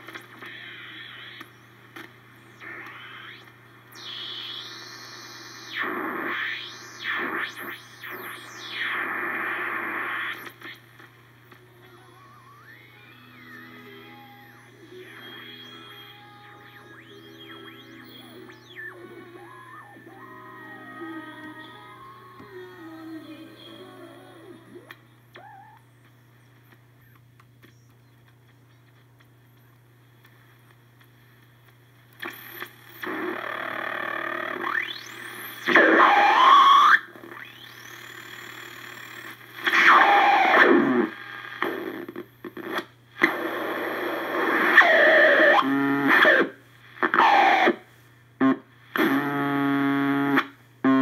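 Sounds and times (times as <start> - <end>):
radio tuning whistles: 0.0 - 11.0, 12.0 - 24.0, 24.7 - 25.8, 32.2 - 51.0
radio static: 0.0 - 51.0
snatches of radio music: 0.0 - 51.0.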